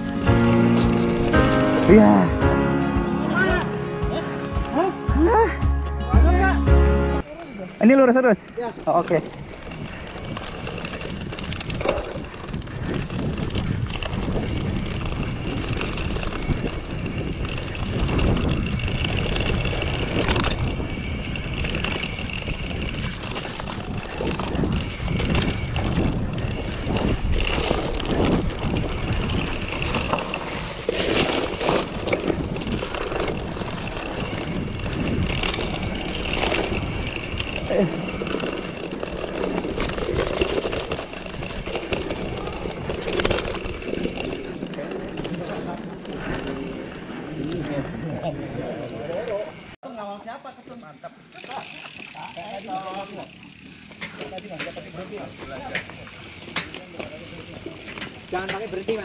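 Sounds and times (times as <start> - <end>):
mountain bike tyres rolling: 0.0 - 5.6, 7.2 - 49.8, 50.8 - 59.0
bike rattling and clattering: 8.3 - 49.8, 51.3 - 59.0.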